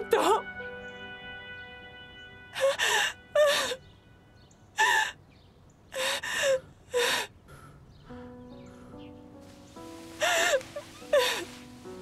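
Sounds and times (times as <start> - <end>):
woman sobbing: 2.6 - 3.8, 4.8 - 5.2, 6.0 - 7.3, 10.2 - 11.6.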